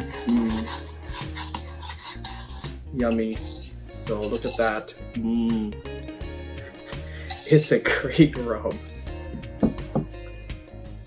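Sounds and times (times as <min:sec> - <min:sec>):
metal spoon scraping a bowl: 0:00.0 - 0:04.9, 0:06.8 - 0:07.8.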